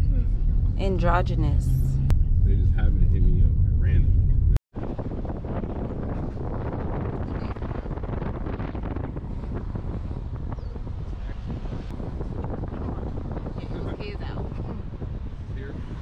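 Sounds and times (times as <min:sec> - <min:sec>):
road noise: 0:00.0 - 0:16.0
wind rushing over microphone: 0:00.0 - 0:16.0.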